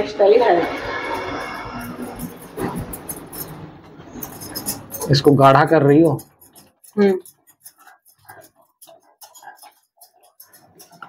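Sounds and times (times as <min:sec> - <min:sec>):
metal spatula scraping pan: 0:00.0 - 0:11.0.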